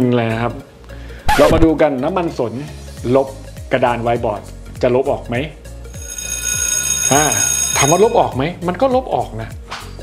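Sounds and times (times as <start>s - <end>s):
high bell-like ringing: 5.9s - 8.5s.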